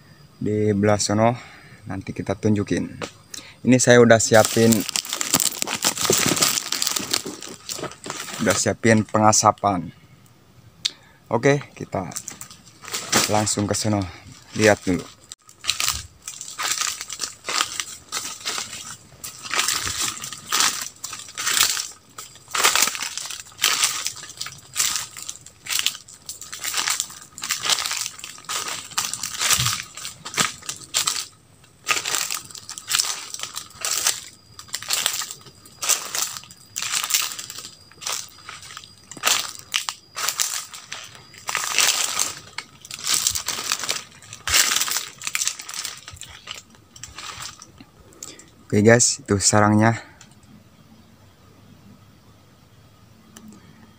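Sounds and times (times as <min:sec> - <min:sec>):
footsteps crunching dry leaves: 0:03.8 - 0:09.5, 0:11.5 - 0:48.4.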